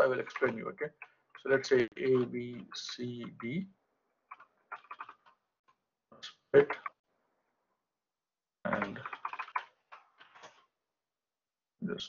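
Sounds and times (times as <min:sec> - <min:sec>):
computer keyboard typing: 0:00.0 - 0:02.6, 0:04.3 - 0:05.4, 0:08.7 - 0:10.6.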